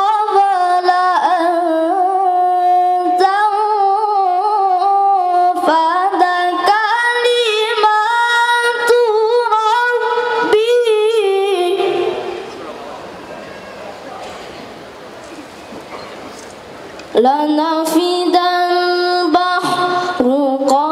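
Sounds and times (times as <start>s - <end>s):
boy reciting melodically: 0.0s - 12.6s, 17.1s - 20.9s.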